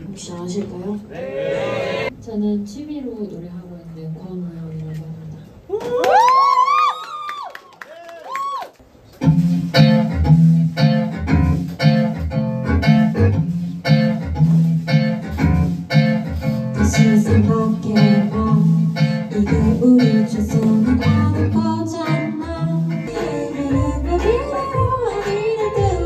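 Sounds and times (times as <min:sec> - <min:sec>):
bass: 0:09.1 - 0:26.0
plucked guitar: 0:09.2 - 0:26.0
woman singing: 0:16.8 - 0:26.0.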